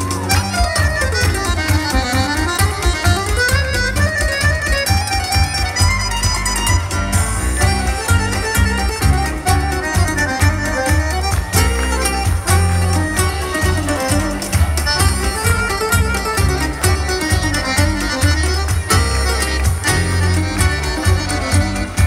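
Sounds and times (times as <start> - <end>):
accordion: 0.0 - 22.0
live folk band: 0.0 - 22.0.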